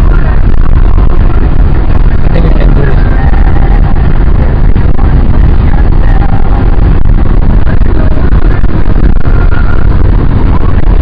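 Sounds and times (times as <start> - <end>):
car engine at high revs: 0.0 - 11.0
road noise inside car: 0.0 - 11.0.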